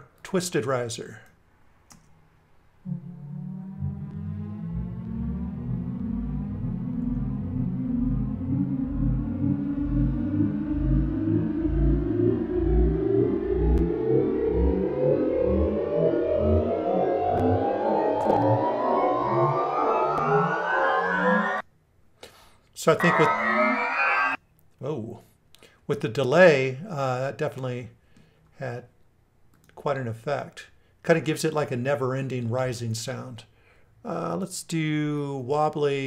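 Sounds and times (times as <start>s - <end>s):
endlessly rising synth sound: 2.8s - 21.6s, 22.9s - 24.4s
pulsing low synth bass: 2.9s - 21.6s.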